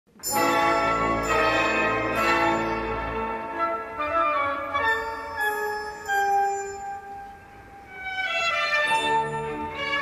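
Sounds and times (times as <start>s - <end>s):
classical orchestral music: 0.1s - 10.0s.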